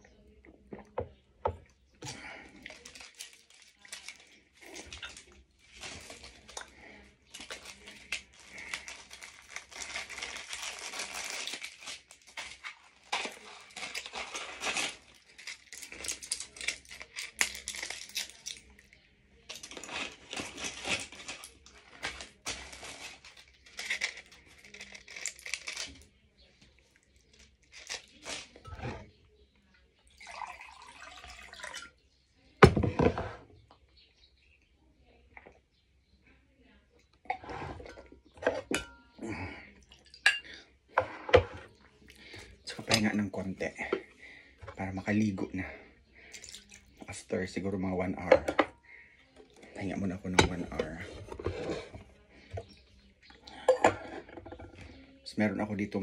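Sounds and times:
medicine packet crinkling and tearing: 0:02.5 - 0:26.1, 0:27.0 - 0:28.6.

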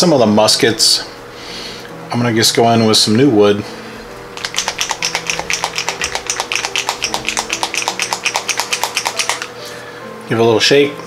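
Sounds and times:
paint bottle rattling when shaken: 0:04.4 - 0:09.6.

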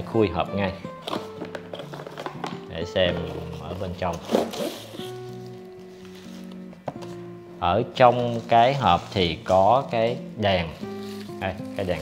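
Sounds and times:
soft background music: 0:00.0 - 0:12.0
packaging rustling: 0:00.9 - 0:07.3, 0:08.0 - 0:10.1, 0:10.9 - 0:12.0.

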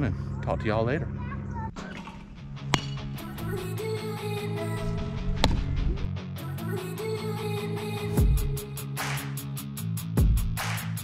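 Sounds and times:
guitar background music: 0:01.8 - 0:10.4.

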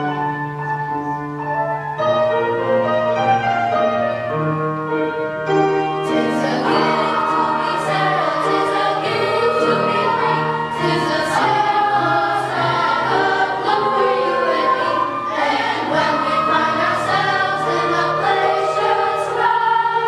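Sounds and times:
choir singing: 0:06.0 - 0:20.0.

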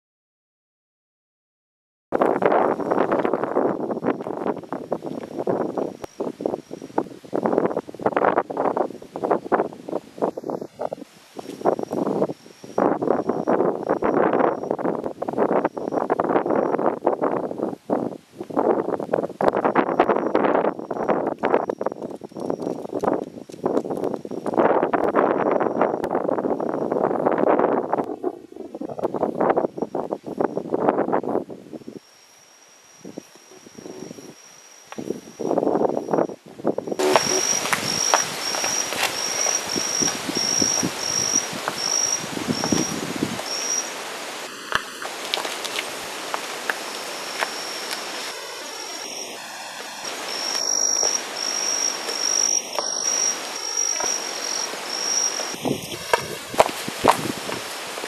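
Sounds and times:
wind gusting on microphone: 0:02.2 - 0:32.0, 0:33.0 - 0:34.4, 0:35.0 - 0:58.0
faint outdoor hiss: 0:02.2 - 0:58.0
insect pulsing trill: 0:09.6 - 0:17.2, 0:19.5 - 0:24.4, 0:31.8 - 0:57.8.

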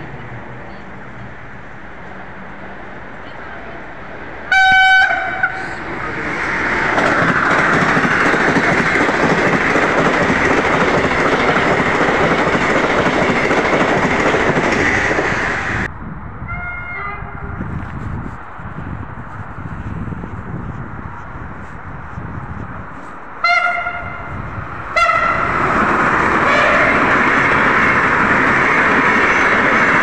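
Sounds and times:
train rushing past: 0:01.3 - 0:16.6, 0:19.8 - 0:30.0
train horn: 0:04.5 - 0:05.8, 0:16.5 - 0:17.5, 0:23.4 - 0:24.3, 0:25.0 - 0:25.5, 0:26.4 - 0:27.0.

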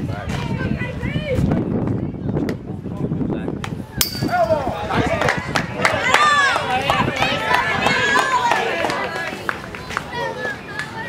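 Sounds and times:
metal bat hitting ball: 0:04.0 - 0:04.8.

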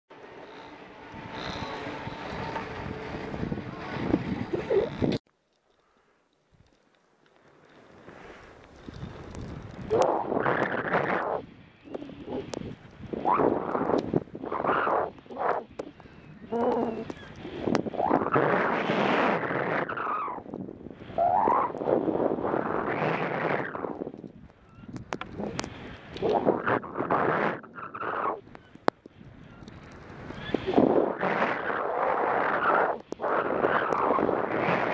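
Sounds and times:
skis swooshing through powder snow: 0:07.6 - 0:11.4.

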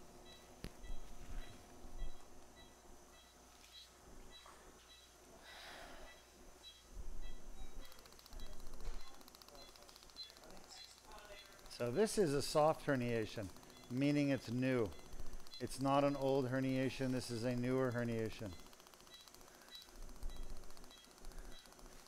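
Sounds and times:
faint buzz: 0:00.0 - 0:22.0
patient monitor beeping: 0:00.0 - 0:22.0.

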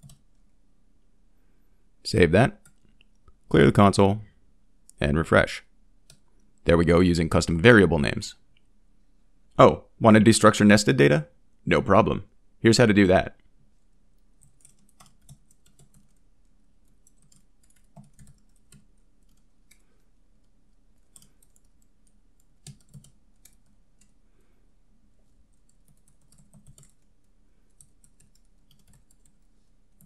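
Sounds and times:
typing on computer keyboard: 0:00.0 - 0:00.2, 0:14.4 - 0:16.2, 0:16.8 - 0:20.0, 0:21.0 - 0:24.2, 0:25.5 - 0:27.1, 0:27.7 - 0:30.0.

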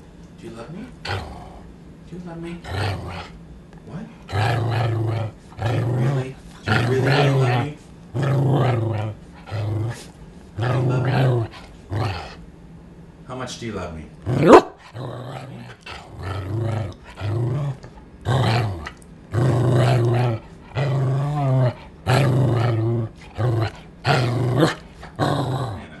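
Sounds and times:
dog growly vocalizations: 0:01.0 - 0:01.7, 0:02.6 - 0:03.4, 0:04.2 - 0:12.4, 0:14.2 - 0:26.0.

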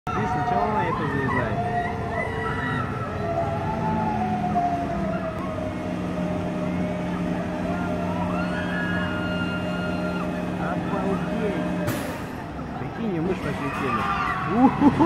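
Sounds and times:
ride machinery humming and whining: 0:00.1 - 0:15.0.

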